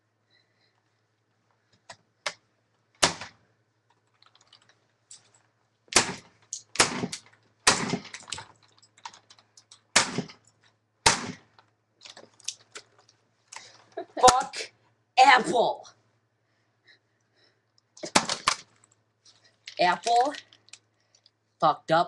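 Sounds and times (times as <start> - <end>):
plastic keyboard being smashed: 18.0 - 18.8.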